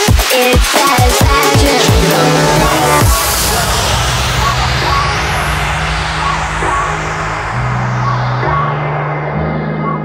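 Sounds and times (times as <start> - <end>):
synth bass notes: 1.1 - 8.1
hissing noise wash: 1.2 - 4.4
high synth blips: 1.3 - 3.5.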